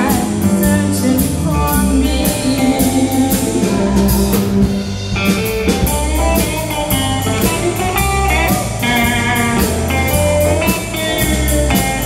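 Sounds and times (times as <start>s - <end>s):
bass guitar: 0.0s - 12.0s
steady drum beat: 0.0s - 12.0s
electric guitar lead with bent notes: 1.5s - 12.0s.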